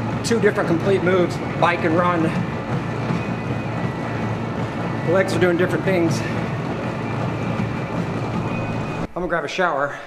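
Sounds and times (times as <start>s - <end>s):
running footfalls: 0.0s - 9.1s
treadmill belt rumble: 0.0s - 9.8s.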